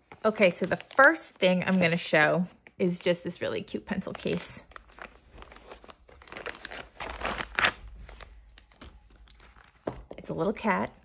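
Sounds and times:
plastic bag crinkling: 0:03.9 - 0:08.7.

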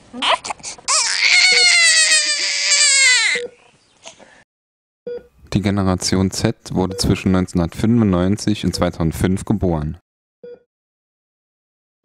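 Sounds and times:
newborn baby crying: 0:00.1 - 0:03.6
faint short beep: 0:10.4 - 0:10.7.

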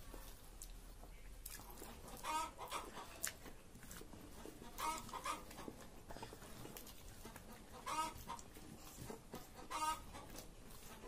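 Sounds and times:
chicken clucking: 0:01.0 - 0:11.0.

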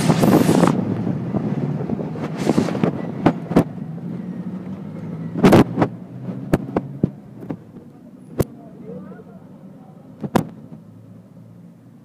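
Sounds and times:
bicycle taxi rolling rumble: 0:00.0 - 0:12.0.

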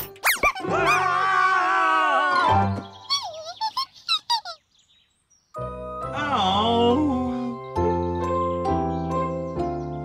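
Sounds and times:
high-pitched squeaky chattering: 0:03.0 - 0:04.6.

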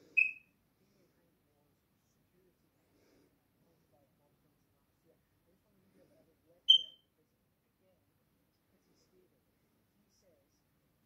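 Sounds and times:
faint low background murmur: 0:00.0 - 0:11.0.

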